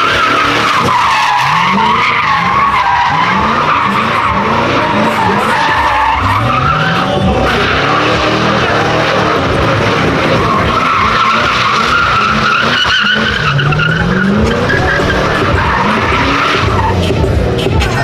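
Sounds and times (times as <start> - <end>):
car engine at high revs: 0.0 - 18.0
tires squealing: 0.0 - 18.0.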